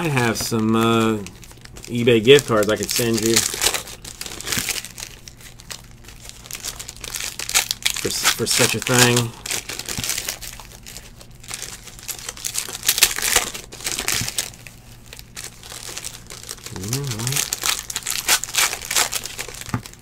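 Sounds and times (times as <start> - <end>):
foil wrappers crinkling and tearing: 0.0 - 20.0.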